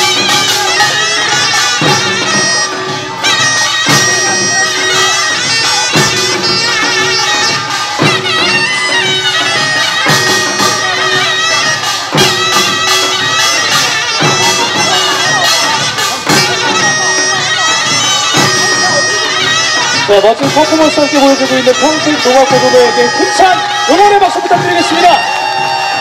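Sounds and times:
heavy drum beat with ringing tone: 0.0 - 26.0
rapid small gongs and drums: 0.0 - 26.0
shrill reedy shawm melody: 0.0 - 26.0.

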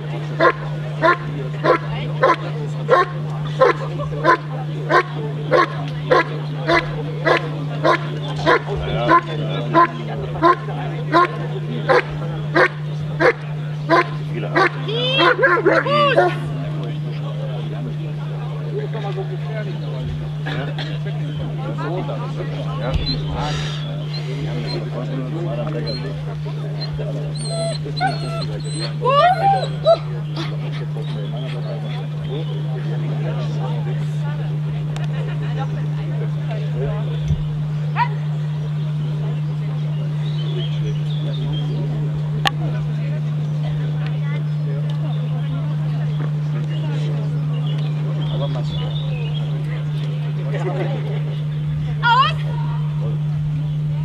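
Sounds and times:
steady low hum: 0.0 - 54.0
dog barking: 0.4 - 9.2, 11.9 - 16.4, 38.0 - 38.2
dog whining: 26.8 - 30.5.

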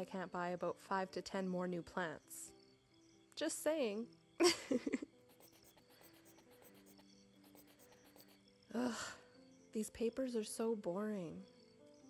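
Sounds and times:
soft background music: 0.0 - 12.0
pen writing on paper: 5.3 - 8.4.

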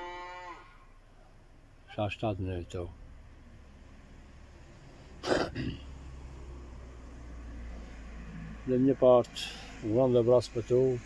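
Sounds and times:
person coughing: 5.2 - 5.9.

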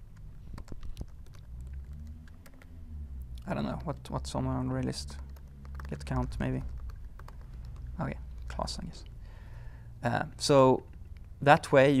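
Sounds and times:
computer keyboard keystrokes: 0.0 - 2.7, 3.6 - 4.2, 4.8 - 8.6
low steady hum: 0.0 - 12.0.

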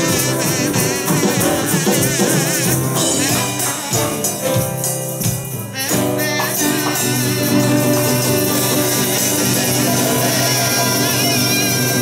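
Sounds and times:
acoustic rock guitar music: 0.0 - 12.0.

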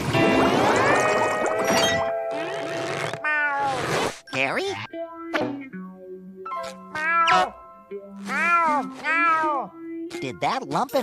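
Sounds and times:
cartoon meowing: 3.2 - 3.9, 6.6 - 7.6, 8.2 - 9.8.

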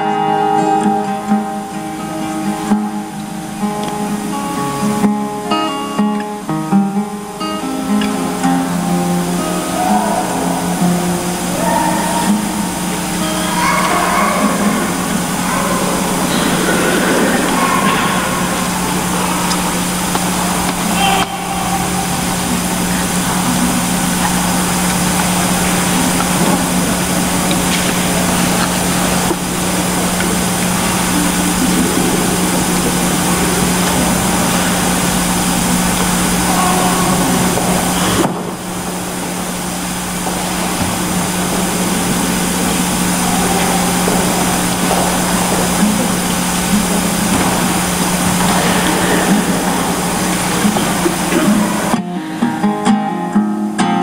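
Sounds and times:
constant hiss: 0.0 - 54.0
electrical hum: 0.0 - 54.0.

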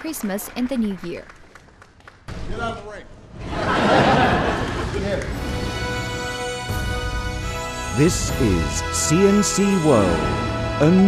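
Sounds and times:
rising rush of theme music: 3.7 - 11.0.

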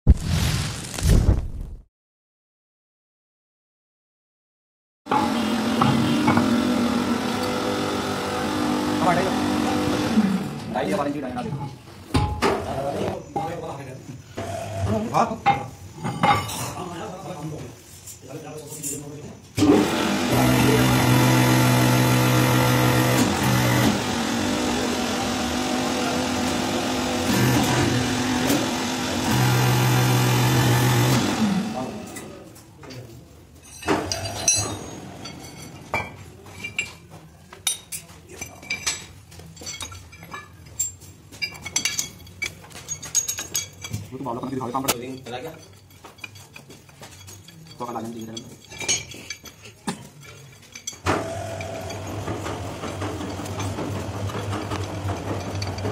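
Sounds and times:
workshop machine motor humming: 19.6 - 32.4, 51.1 - 55.9.

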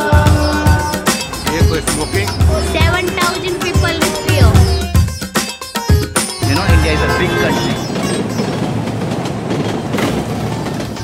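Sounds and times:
train rumbling on rails: 0.0 - 5.1, 6.4 - 11.0.

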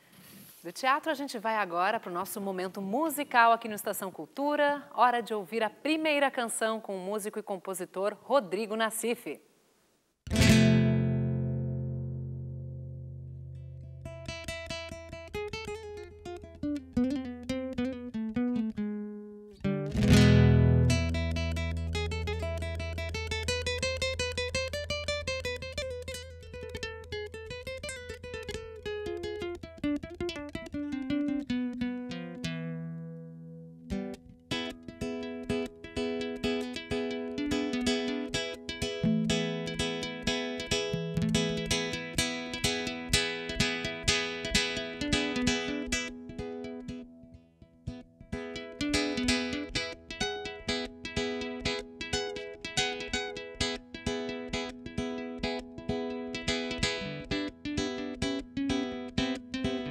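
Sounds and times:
classical guitar fingerstyle: 10.3 - 59.9.

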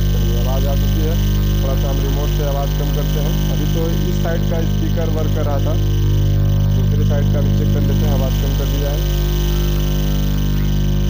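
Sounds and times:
low mains hum: 0.0 - 11.0.

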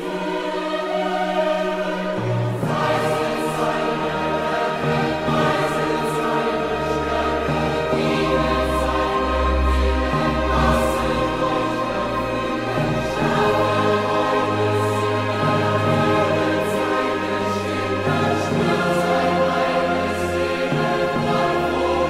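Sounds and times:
choir singing sustained chords: 0.0 - 22.0.

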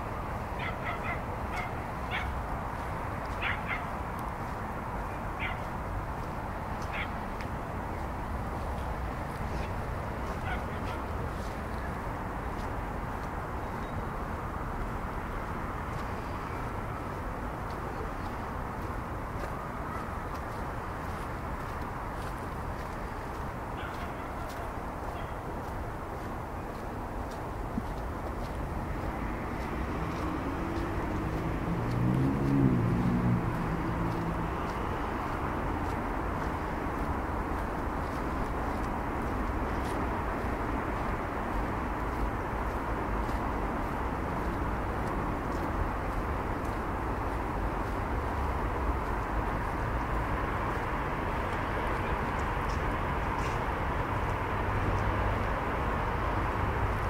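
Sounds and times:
city traffic hum: 0.0 - 57.0
engine passing: 27.0 - 57.0.

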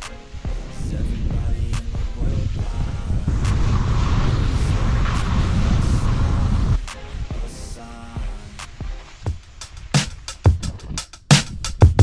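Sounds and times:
wind buffeting microphone: 0.4 - 7.5, 8.2 - 11.9.

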